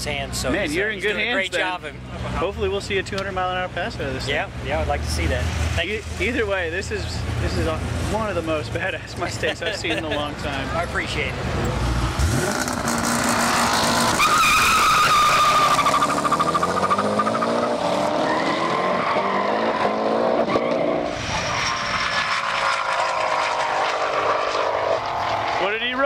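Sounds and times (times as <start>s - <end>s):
car engine accelerating hard: 11.4s - 25.9s
car passing at high speed: 11.4s - 25.9s.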